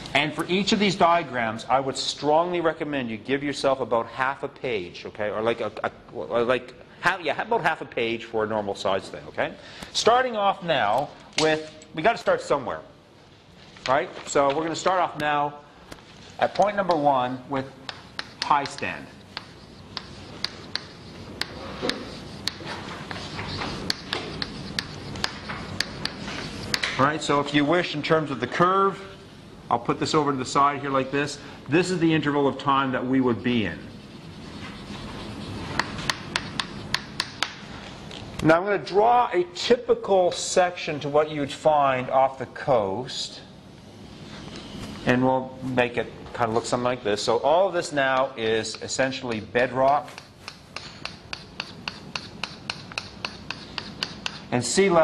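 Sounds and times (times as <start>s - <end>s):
chalk scratching on chalkboard: 16.1s - 27.4s, 33.0s - 37.6s, 47.8s - 55.0s
chalk tapping on board: 16.4s - 27.0s, 34.0s - 37.6s, 48.1s - 54.5s.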